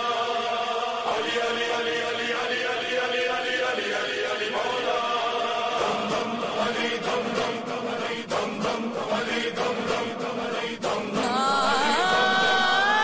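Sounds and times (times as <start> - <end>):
backing voices: 11.2 - 13.0.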